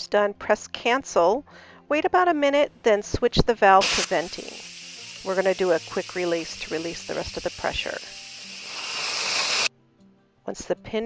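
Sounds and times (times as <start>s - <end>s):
steam hissing from valve: 3.8s - 9.7s.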